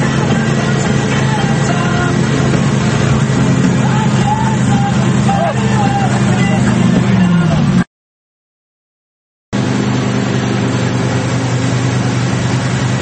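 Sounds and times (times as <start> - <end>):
wake water rushing: 0.0 - 7.8, 9.6 - 13.0
wind: 0.0 - 7.8, 9.6 - 13.0
boat engine running: 0.0 - 7.9, 9.5 - 13.0.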